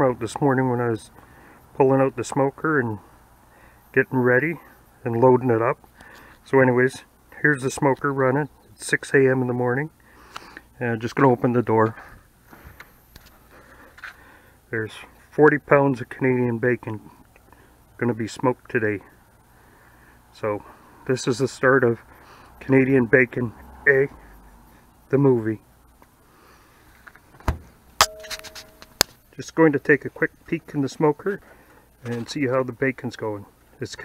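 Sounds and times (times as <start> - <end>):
faint steady background noise: 0.0 - 34.0
smoker door thumping shut: 27.4 - 27.7
metal door clicks: 27.4 - 28.7.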